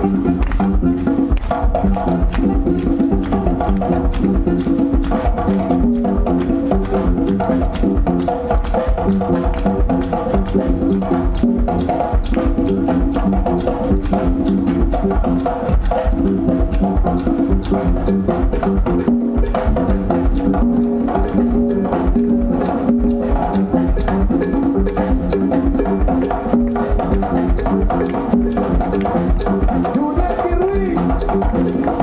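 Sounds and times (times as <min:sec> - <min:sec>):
electric bass: 0:00.0 - 0:30.0
congas: 0:00.0 - 0:32.0.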